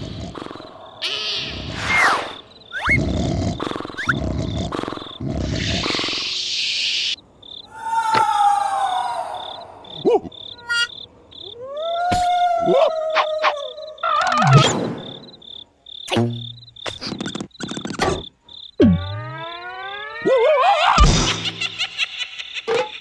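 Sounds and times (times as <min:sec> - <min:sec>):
crickets chirping: 0:00.0 - 0:20.6, 0:21.4 - 0:23.0.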